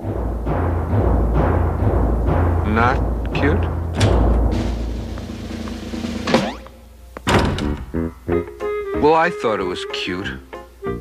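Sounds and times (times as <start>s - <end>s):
cartoon door slamming: 0.5s - 8.1s.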